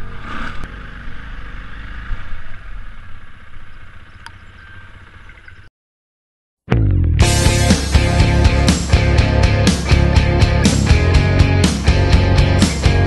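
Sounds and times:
dirt bike engine running: 6.7 - 13.0.

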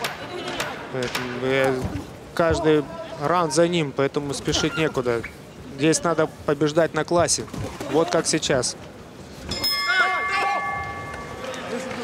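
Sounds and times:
boxing ring bell ringing: 9.5 - 12.0.

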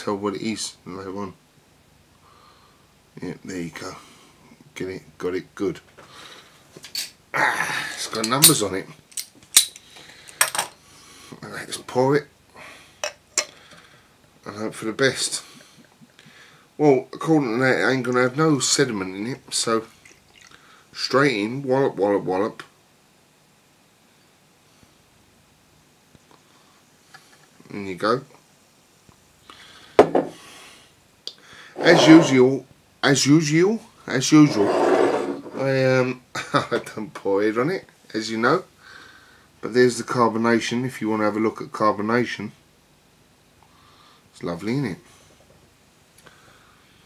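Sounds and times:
glass knocking on wooden table: 30.0 - 30.3.

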